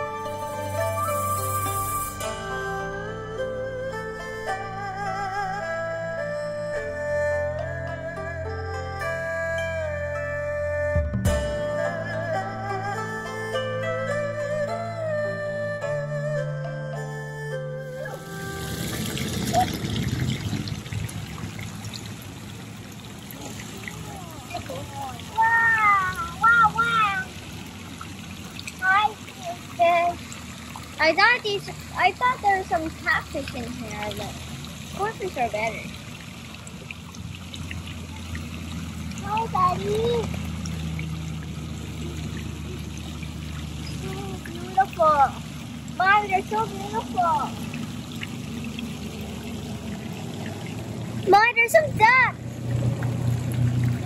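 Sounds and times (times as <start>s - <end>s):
water trickling: 0.0s - 16.0s, 16.9s - 54.0s
child exclaiming: 23.4s - 27.3s, 28.8s - 30.2s, 39.2s - 40.3s, 51.3s - 52.4s.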